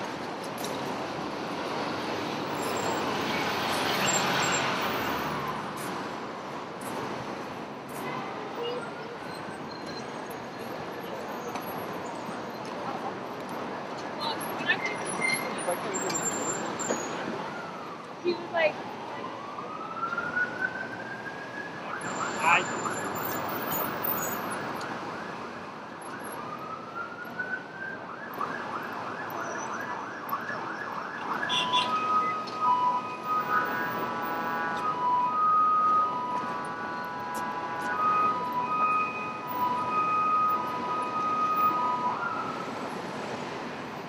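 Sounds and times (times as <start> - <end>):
emergency vehicle siren: 0.0 - 6.8, 8.5 - 44.0
traffic hum: 0.0 - 44.0.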